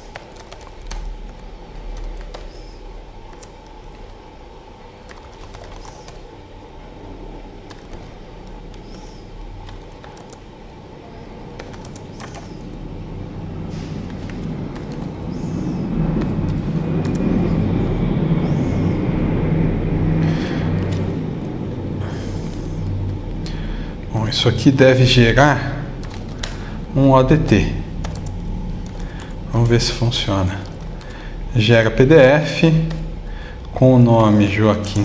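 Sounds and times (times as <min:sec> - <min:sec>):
keyboard keys clicking: 0:00.0 - 0:04.3, 0:05.0 - 0:06.3, 0:07.6 - 0:10.4, 0:11.5 - 0:12.8, 0:14.0 - 0:17.4, 0:20.8 - 0:21.5, 0:26.0 - 0:27.0, 0:28.0 - 0:29.9, 0:30.5 - 0:31.1, 0:32.8 - 0:35.0
low rumble: 0:00.0 - 0:35.0.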